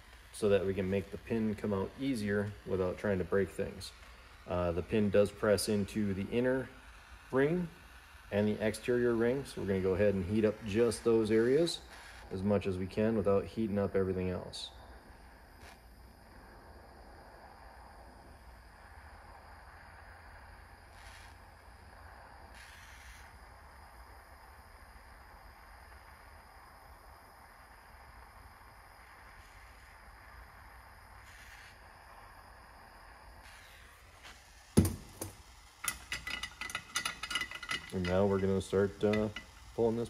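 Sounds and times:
torch flame hissing: 0.0 - 40.0
sharp knock: 34.8 - 35.4
metal tools clinking: 35.2 - 39.6.

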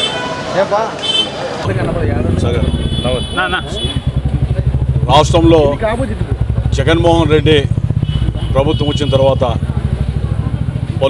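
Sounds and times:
man speaking: 1.7 - 4.0
engine idling: 1.7 - 11.0.

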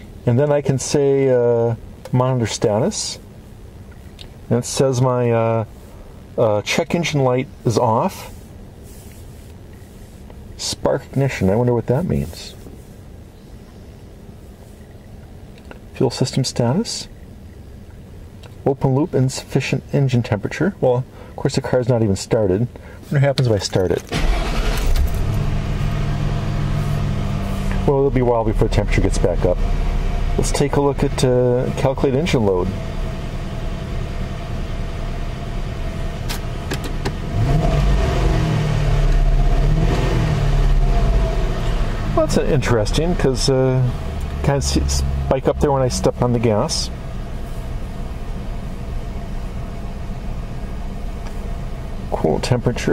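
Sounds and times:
low background rumble: 0.0 - 52.9
car engine idling and revving: 24.0 - 52.9.

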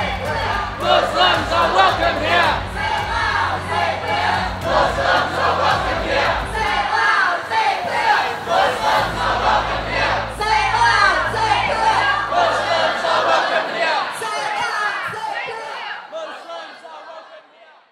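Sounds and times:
crowd shouting together: 0.0 - 17.9.

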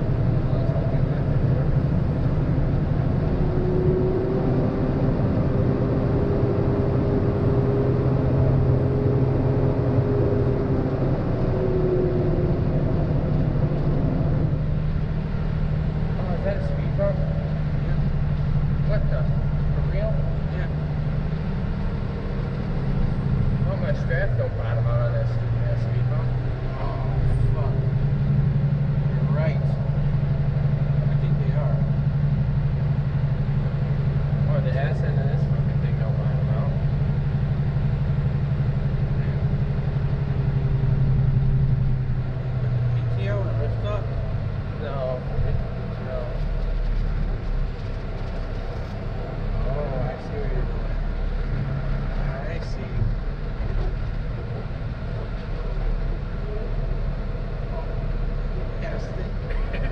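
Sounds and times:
diesel truck engine droning: 0.0 - 59.9.

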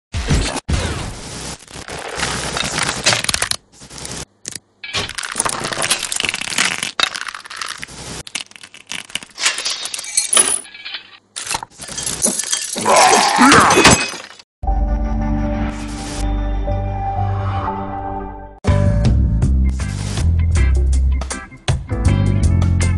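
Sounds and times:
crackling hissing static: 3.1 - 4.6, 5.2 - 9.3.

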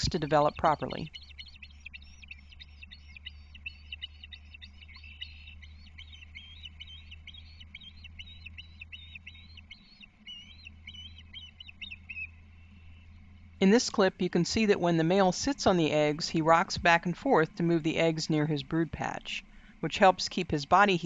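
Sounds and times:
low steady hum: 0.0 - 21.0
ospreys chirping: 0.0 - 21.0.

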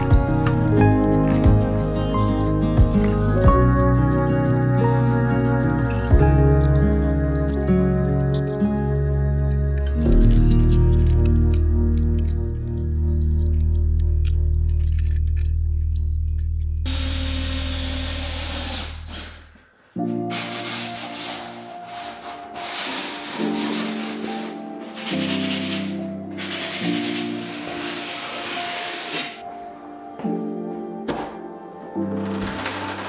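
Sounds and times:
background music with deep bass: 0.0 - 16.9
sanding sponge rubbing wood: 20.3 - 29.4.

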